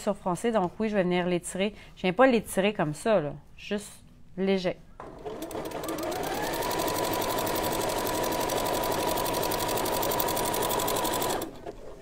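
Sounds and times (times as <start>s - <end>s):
sewing machine stitching: 5.0s - 12.0s.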